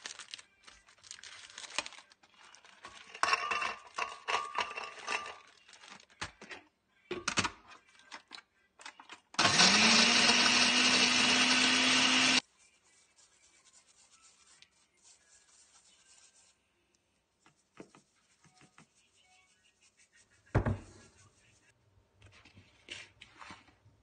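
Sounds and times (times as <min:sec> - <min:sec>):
blender motor whining: 0:09.4 - 0:12.4
thump: 0:20.6 - 0:20.9.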